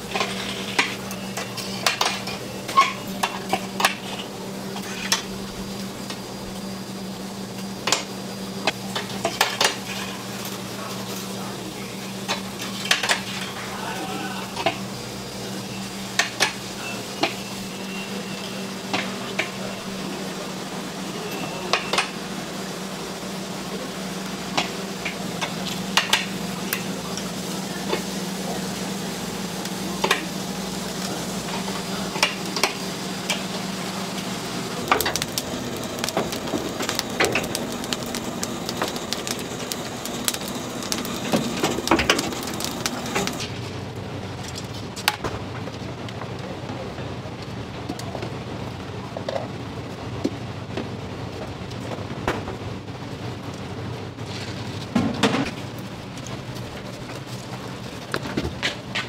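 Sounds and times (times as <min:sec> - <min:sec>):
crackling sizzling hiss: 0:00.0 - 0:45.2
utensils clicking and knocking: 0:34.8 - 0:43.5.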